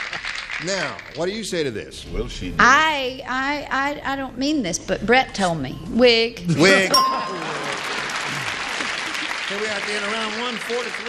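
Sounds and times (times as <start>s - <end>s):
studio audience applauding: 0.0s - 1.4s, 7.0s - 11.0s
bell-like chime: 6.9s - 8.1s.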